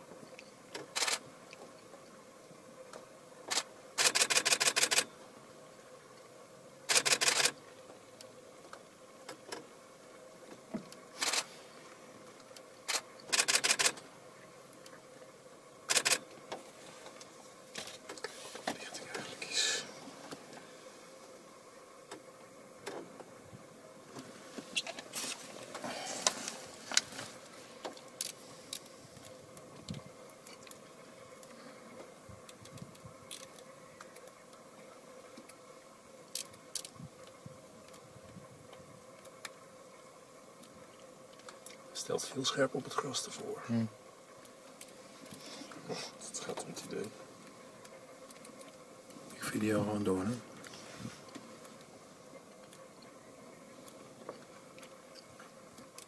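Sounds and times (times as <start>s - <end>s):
faint steady hum: 0.0s - 56.0s
camera shutter clicks: 0.9s - 1.2s, 3.5s - 5.1s, 6.9s - 7.6s, 11.2s - 11.5s, 12.9s - 14.0s, 15.9s - 16.2s
rustling: 24.1s - 29.4s.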